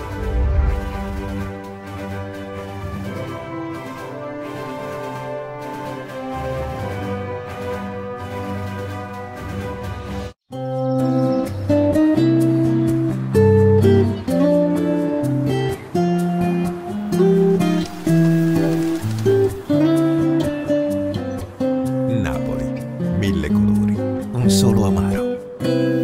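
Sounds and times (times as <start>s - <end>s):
bass line: 0.0s - 1.6s.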